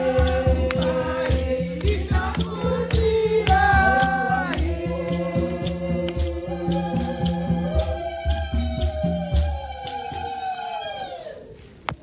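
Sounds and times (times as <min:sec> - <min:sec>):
steady low drum beat: 0:00.0 - 0:07.6
choir singing gospel: 0:00.0 - 0:11.4
shaker rattling: 0:00.0 - 0:12.0.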